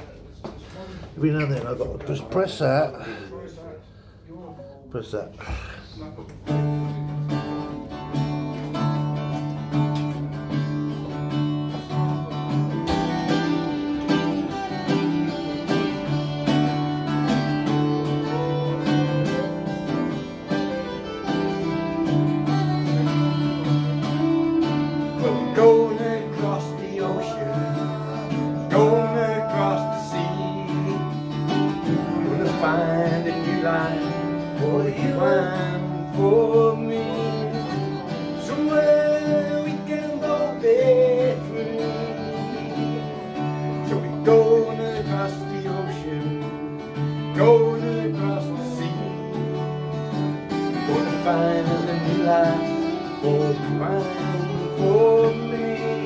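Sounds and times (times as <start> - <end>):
acoustic guitars strumming chords: 5.4 - 56.0.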